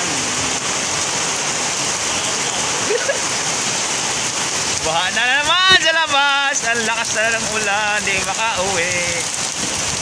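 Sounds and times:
heavy rain on concrete: 0.0 - 10.0.

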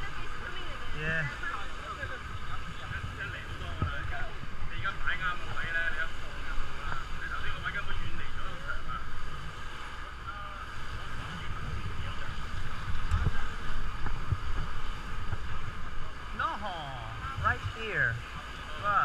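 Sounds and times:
faint indistinct voices: 0.0 - 19.0
wind buffeting microphone: 10.9 - 16.4.

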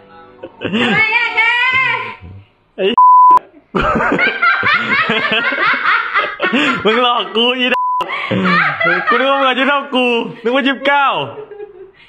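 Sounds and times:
woman laughing hard: 0.4 - 2.2, 3.4 - 7.4, 8.0 - 9.7, 11.4 - 12.0
censor bleep: 3.0 - 3.4, 7.8 - 8.1
loud steady beep: 3.0 - 3.4, 7.8 - 8.1.

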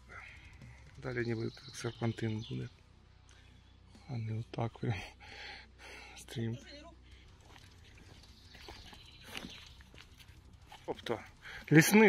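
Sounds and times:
footsteps on dirt trail: 7.3 - 12.0.

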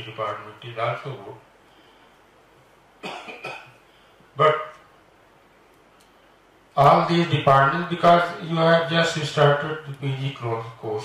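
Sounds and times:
man coughing into microphone: 3.0 - 3.8.

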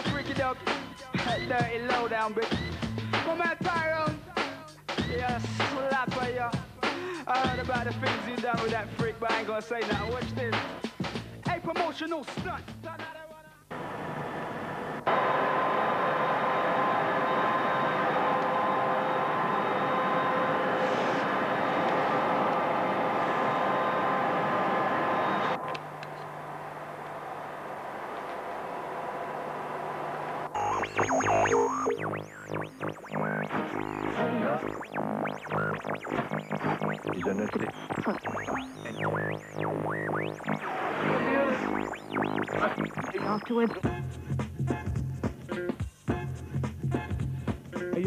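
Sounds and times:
electronic synth music: 30.4 - 44.2.

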